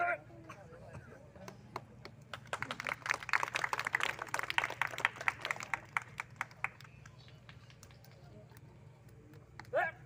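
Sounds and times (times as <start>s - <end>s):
people clapping: 1.4s - 9.8s.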